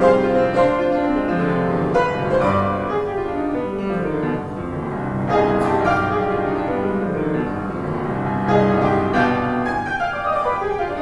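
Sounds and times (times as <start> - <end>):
solo grand piano piece: 0.0 - 11.0.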